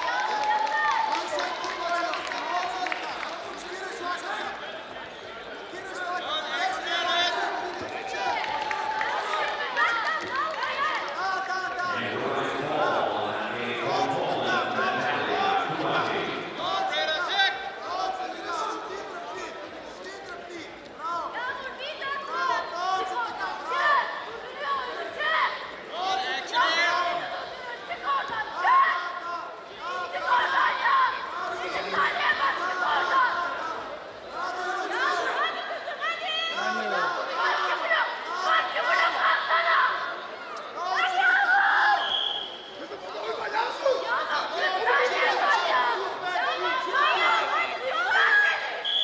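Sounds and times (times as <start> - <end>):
arena crowd noise: 0.0 - 49.0.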